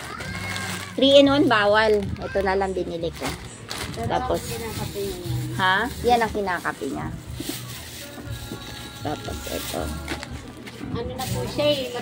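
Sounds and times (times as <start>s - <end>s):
soft music: 0.0s - 12.0s.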